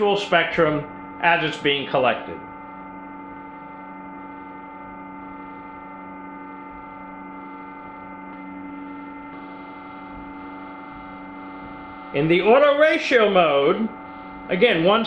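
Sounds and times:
steady electrical hum: 0:00.0 - 0:15.0.

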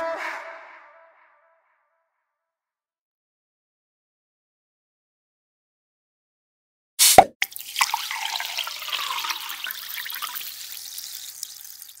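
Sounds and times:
fizzing drips and bubbles: 0:07.4 - 0:12.0.

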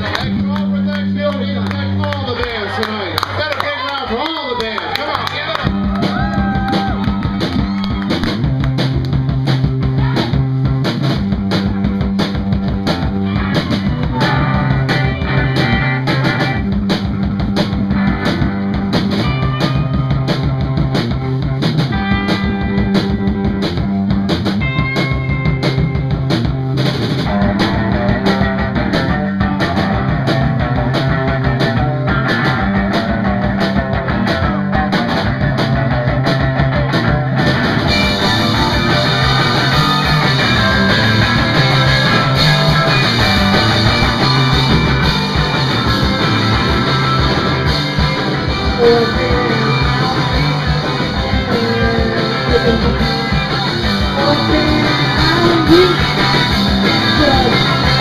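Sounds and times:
live rock band playing loud: 0:00.0 - 0:58.0.

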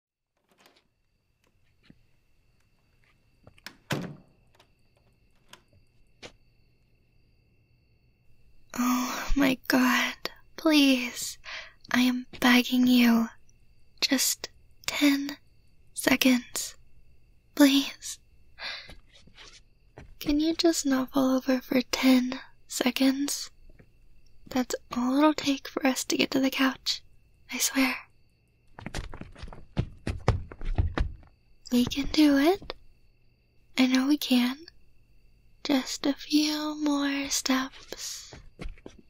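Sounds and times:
door clicks and knocks: 0:00.4 - 0:00.9, 0:03.5 - 0:05.8
heavy door thud: 0:03.6 - 0:04.6
faint breath: 0:11.4 - 0:11.8, 0:18.6 - 0:19.0.

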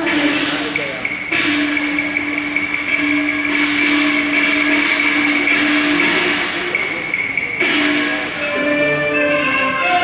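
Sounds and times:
opera accompaniment long note: 0:07.6 - 0:10.0.

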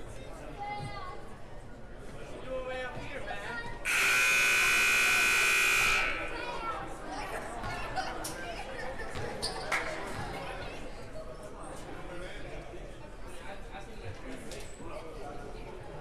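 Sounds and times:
crowd chatter: 0:00.0 - 0:16.0
scoreboard horn buzz: 0:03.9 - 0:06.6.

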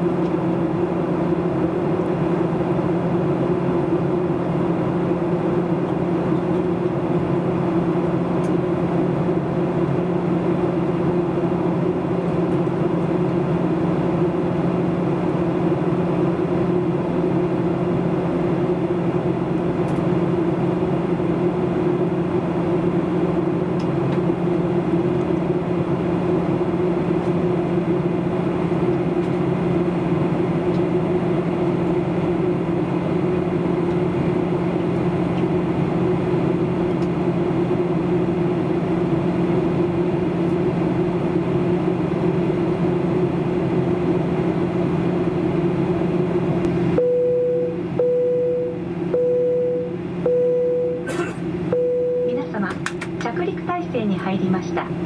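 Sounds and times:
airplane cabin drone: 0:00.0 - 0:55.0.

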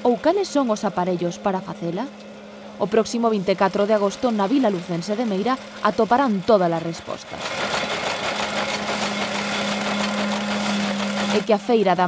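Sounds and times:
threshing machine hum: 0:00.0 - 0:12.0.

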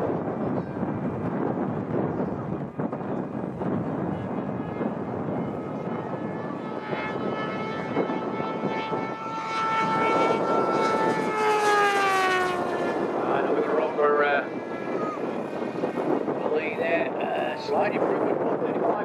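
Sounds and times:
motorcycle engine at high revs passing: 0:05.6 - 0:16.3.

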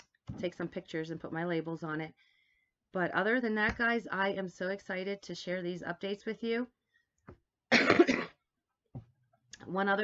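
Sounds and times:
woman coughing: 0:07.7 - 0:08.4.

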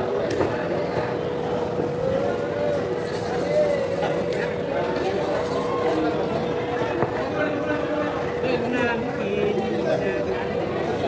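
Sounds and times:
market crowd voices: 0:00.0 - 0:11.0.

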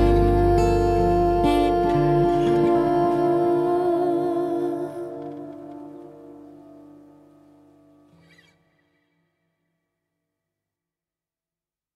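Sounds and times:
fretless acoustic bass: 0:00.0 - 0:03.8
acoustic guitar ringing: 0:00.0 - 0:09.0.

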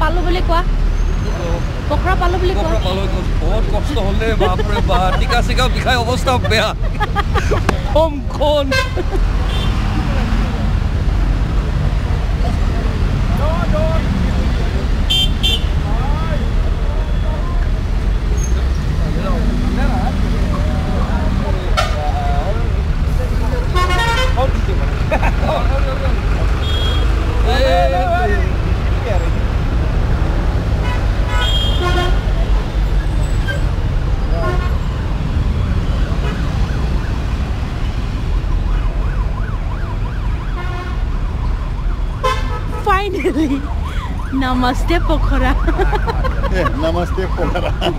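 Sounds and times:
people's voices: 0:00.0 - 0:15.1, 0:15.7 - 0:29.5, 0:42.7 - 0:47.9
traffic and motorcycle engines rumbling: 0:00.0 - 0:47.9.

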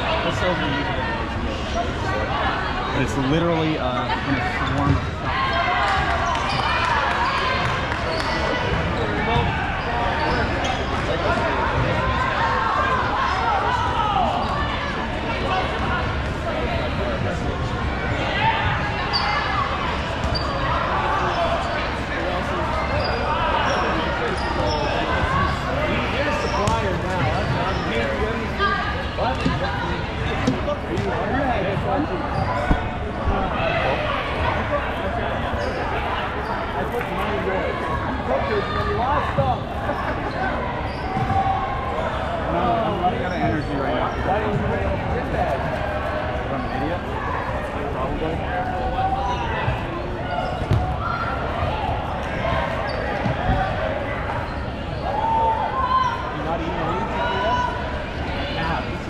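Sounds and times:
players calling and chattering: 0:00.0 - 0:59.0
dodgeballs bouncing and smacking: 0:50.6 - 0:51.1.

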